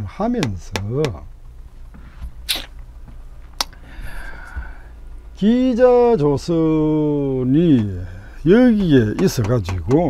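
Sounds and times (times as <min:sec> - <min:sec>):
low hum: 0:00.0 - 0:10.0
man's sharp breath: 0:03.8 - 0:05.0.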